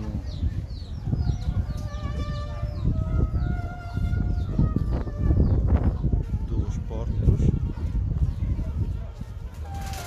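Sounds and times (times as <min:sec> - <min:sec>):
crowd noise: 0:00.0 - 0:10.0
wind rumble on microphone: 0:00.0 - 0:10.0.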